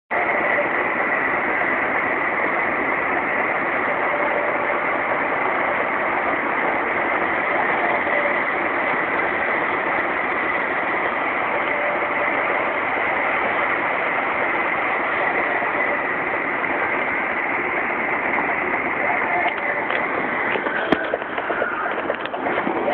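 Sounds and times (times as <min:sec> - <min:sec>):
engine droning: 0:00.1 - 0:22.9
wind and road noise: 0:00.1 - 0:22.9.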